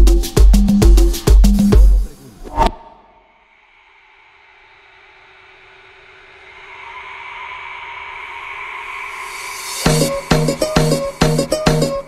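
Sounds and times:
hissing synth swell: 3.4 - 11.2
held synth tone: 6.6 - 12.0.

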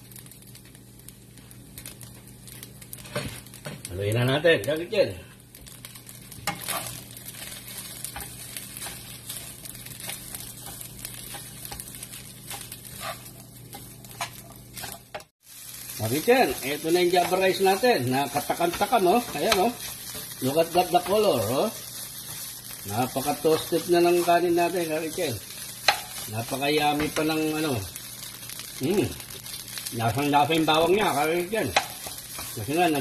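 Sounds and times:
rice sizzling in a wok: 0.0 - 33.0
wooden spatula scraping a pan: 6.4 - 15.3.

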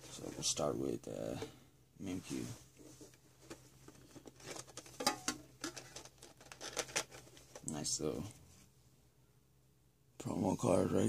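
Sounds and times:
plastic insert clicks and crinkles: 3.5 - 7.7
metal tin lid opening: 4.6 - 6.0.

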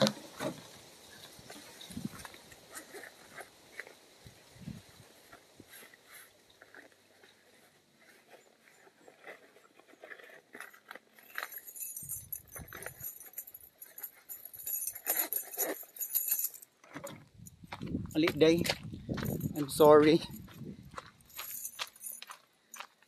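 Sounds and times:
crinkly scratchy noise: 0.0 - 13.2
fabric bag rustling: 5.7 - 17.0.

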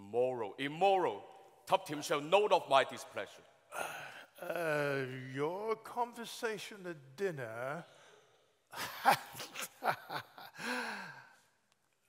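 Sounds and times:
man laughing breathily: 8.8 - 11.4.

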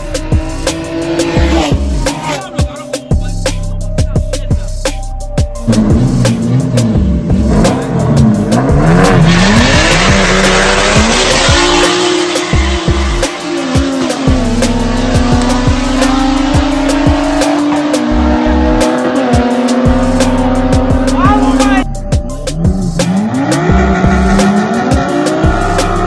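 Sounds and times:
car engines revving: 0.0 - 4.7, 5.5 - 26.0
music with a beat: 0.0 - 26.0.

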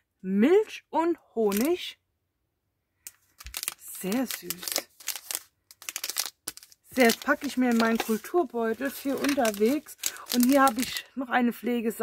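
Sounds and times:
plastic wrapper crinkling: 1.5 - 1.8, 3.1 - 11.2.

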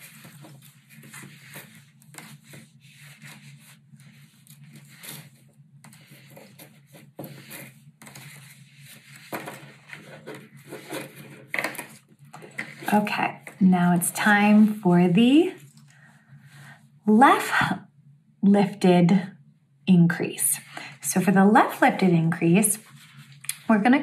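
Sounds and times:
knitting needles and yarn rustling: 0.0 - 15.8
low steady hum: 0.0 - 24.0.

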